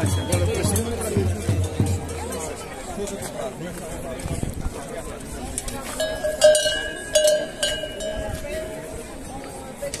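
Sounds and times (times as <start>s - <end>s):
metal cowbells ringing: 0.0s - 3.2s, 6.0s - 9.7s.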